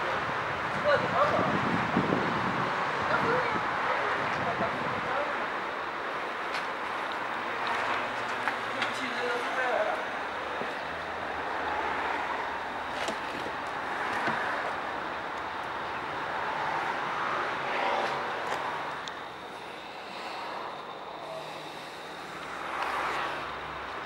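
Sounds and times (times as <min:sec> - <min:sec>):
outdoor background noise: 0:00.0 - 0:24.0.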